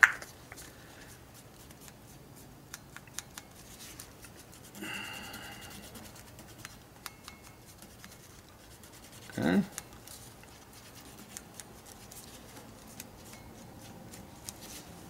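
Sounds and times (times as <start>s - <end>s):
swab scratching on leather: 3.6s - 13.1s
rubbing noise: 7.6s - 13.0s.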